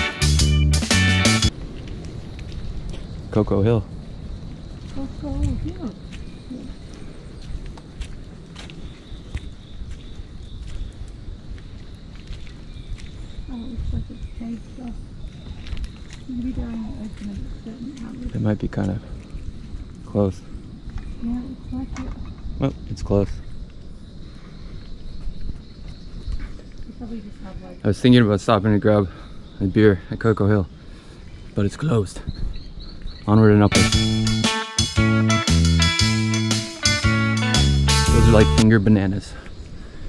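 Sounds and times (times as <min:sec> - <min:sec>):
barefoot footsteps on dirt path: 0:01.5 - 0:03.1, 0:04.8 - 0:20.1, 0:24.6 - 0:26.9
high insect drone: 0:01.5 - 0:40.0
dry leaves crackling underfoot: 0:04.8 - 0:14.4, 0:15.1 - 0:18.5.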